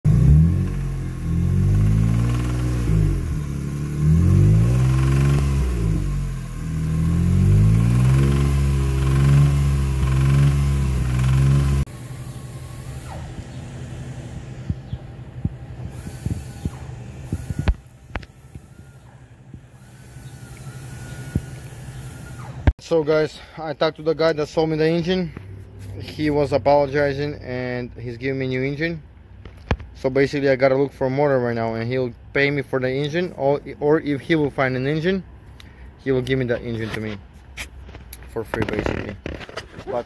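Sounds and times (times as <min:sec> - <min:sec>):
car engine revving: 0:00.1 - 0:22.7.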